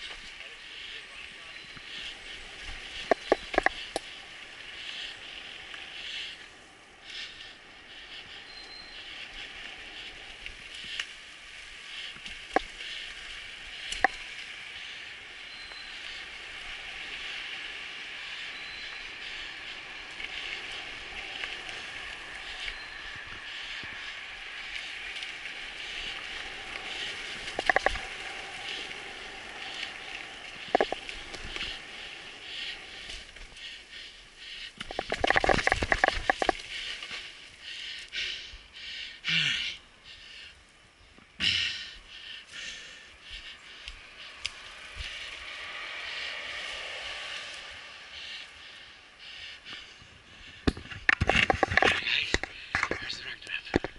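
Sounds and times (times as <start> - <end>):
mountain bike rolling on dirt: 0.0 - 39.2, 39.8 - 53.9.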